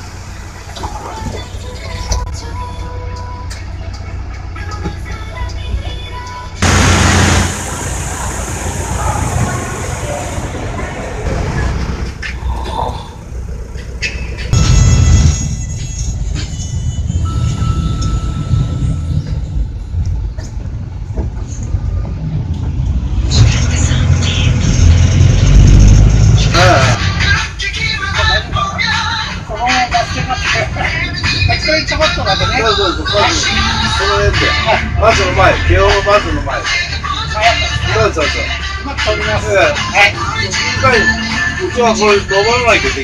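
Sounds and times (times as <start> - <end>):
bus engine and road rumble: 0.0 - 43.0
music: 0.8 - 6.6, 13.8 - 20.1, 26.4 - 43.0
voices: 4.7 - 13.8, 26.4 - 43.0.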